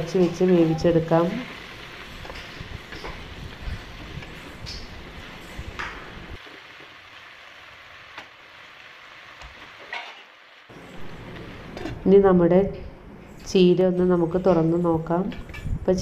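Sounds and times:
leaves rustling while stirred: 0.0s - 11.1s.

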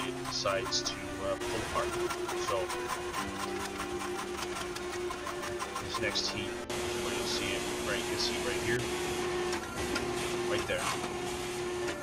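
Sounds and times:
hydraulic press hum and rattle: 0.0s - 12.0s.

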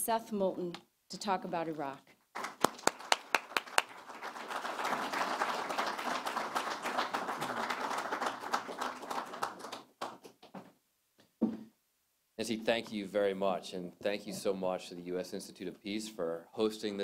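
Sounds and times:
audience applauding: 2.3s - 10.4s.

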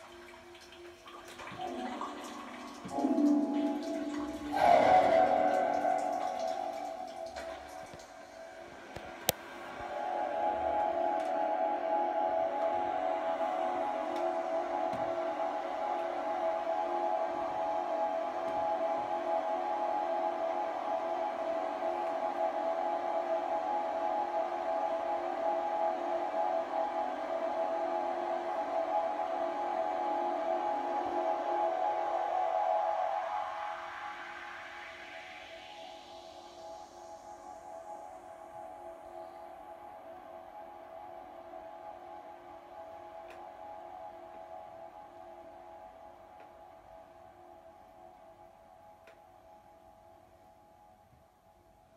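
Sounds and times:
electronic ambient sound: 0.0s - 51.9s.

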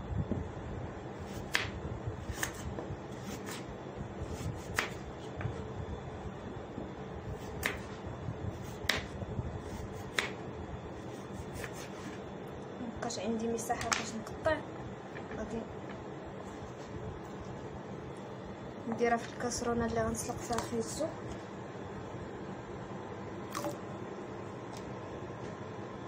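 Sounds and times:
steady low hum: 0.0s - 26.0s
knife cutting carrots: 1.2s - 5.5s, 11.0s - 12.2s.

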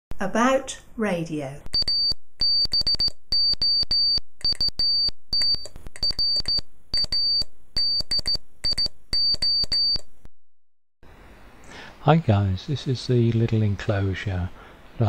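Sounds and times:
morse code beeps: 1.7s - 10.1s.

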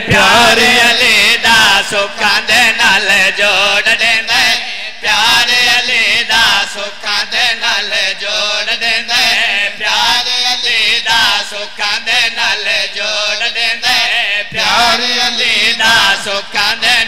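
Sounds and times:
man chanting into a microphone: 0.0s - 17.0s.

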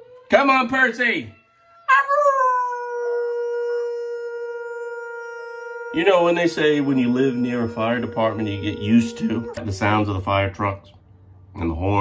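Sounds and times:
long howl: 1.9s - 10.0s.

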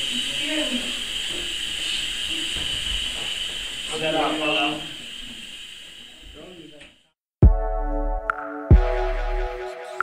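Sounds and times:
steady high hiss: 0.0s - 7.2s.

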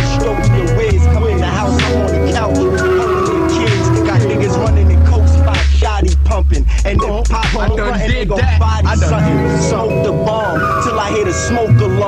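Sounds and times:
deep bass line: 0.0s - 12.0s
rapping over a beat: 0.0s - 12.0s.

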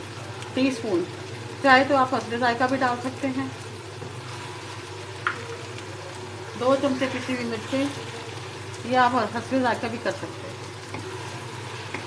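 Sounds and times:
food sizzling in a wok: 0.0s - 12.0s
wooden spatula stirring: 4.0s - 12.0s.

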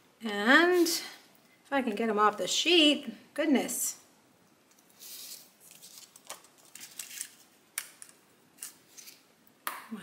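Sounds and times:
plastic sheet rustling: 5.0s - 7.6s.

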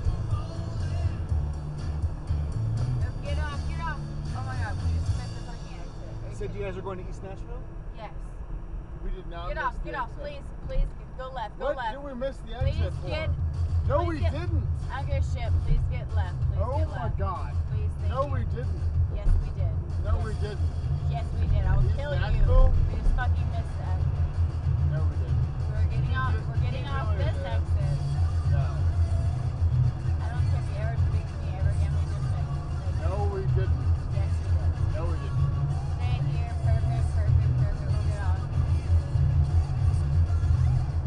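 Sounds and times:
car stereo music with pulsing bass: 0.0s - 7.0s, 11.3s - 41.0s.

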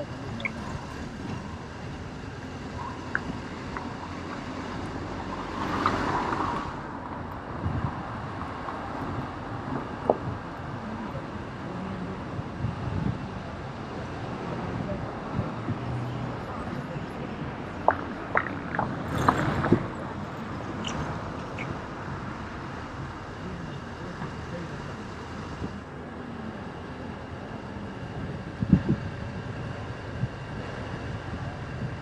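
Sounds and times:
road traffic: 0.0s - 32.0s.

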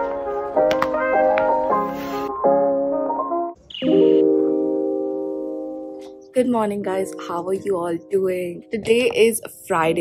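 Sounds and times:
background music melody: 0.0s - 10.0s
short high chirp: 3.7s - 4.3s.

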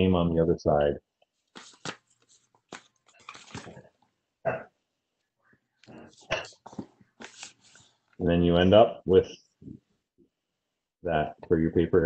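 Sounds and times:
paper rustling and creasing: 1.4s - 4.0s, 5.8s - 8.2s.

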